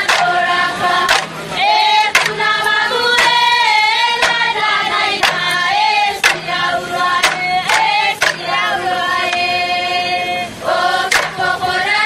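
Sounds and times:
sharp percussive beat: 0.0s - 9.5s, 11.1s - 11.6s
group chanting: 0.0s - 12.0s.

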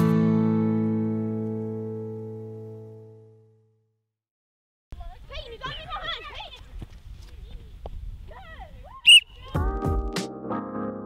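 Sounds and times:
music: 0.0s - 3.6s, 9.6s - 11.0s
voices: 5.0s - 9.6s
sports whistle blast: 9.0s - 9.3s.

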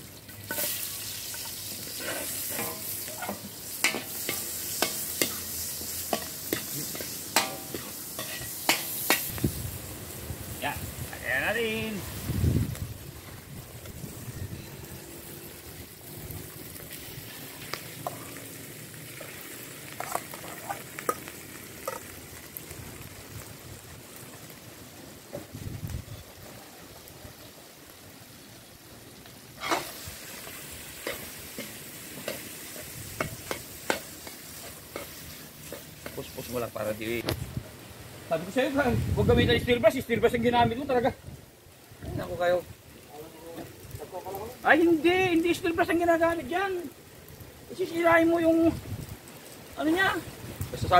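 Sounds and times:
rice sizzling in a wok: 0.0s - 50.9s
wooden spatula scraping a wok: 0.3s - 9.3s, 29.6s - 36.6s.

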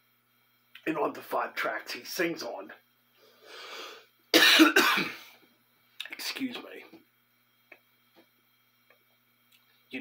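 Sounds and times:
short breath in: 3.2s - 4.1s
man coughing: 4.4s - 5.4s.

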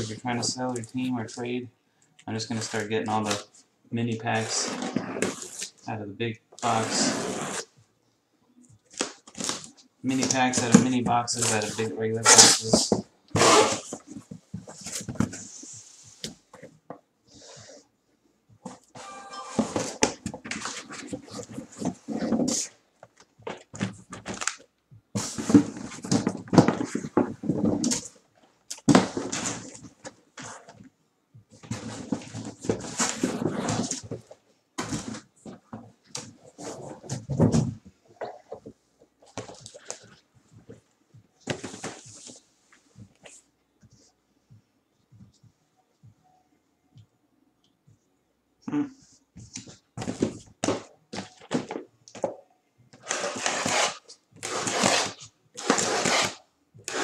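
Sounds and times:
cardboard scraping and rustling: 31.6s - 34.2s, 53.0s - 57.0s.

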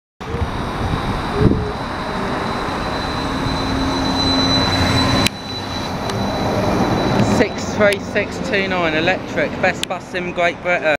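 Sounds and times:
electric bus high whine: 0.2s - 10.9s
road and traffic noise: 0.2s - 10.9s.

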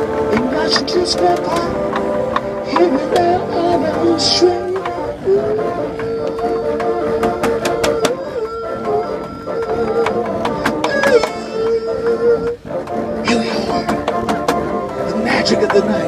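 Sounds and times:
bassoon ensemble: 0.0s - 16.0s
person singing long notes: 0.0s - 16.0s.

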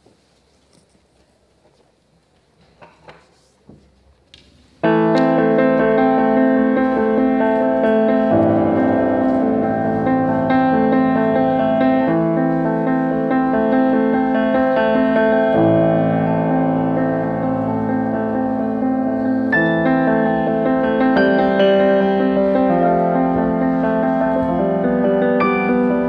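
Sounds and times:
solo grand piano piece: 4.8s - 26.0s.

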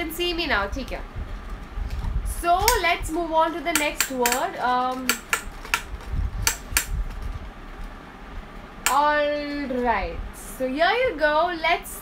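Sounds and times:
sharp plastic clicks: 2.6s - 2.8s, 3.7s - 7.2s.

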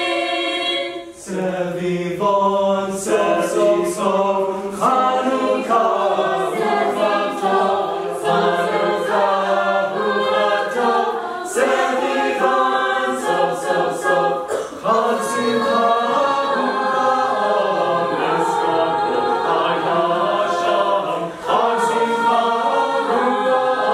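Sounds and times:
a cappella group singing in harmony: 0.0s - 23.9s.

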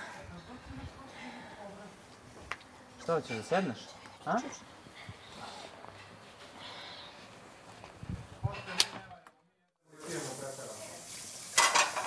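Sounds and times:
hissing room noise: 9.9s - 12.0s.

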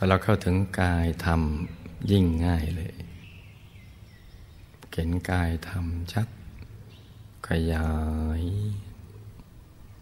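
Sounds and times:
man speaking: 0.0s - 3.2s, 4.9s - 6.4s, 7.4s - 9.0s
faint background hiss: 0.0s - 10.0s.

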